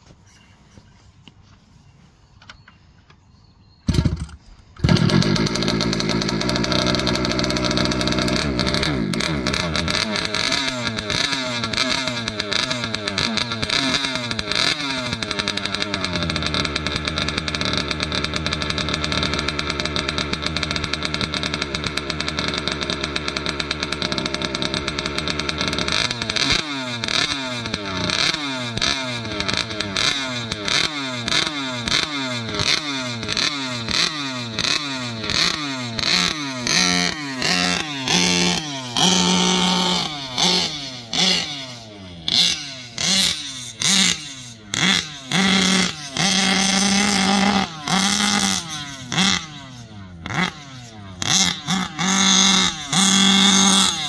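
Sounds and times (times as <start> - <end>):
engine throttle blips: 3.8 - 54.0
two-stroke engine revving and idling: 3.9 - 54.0.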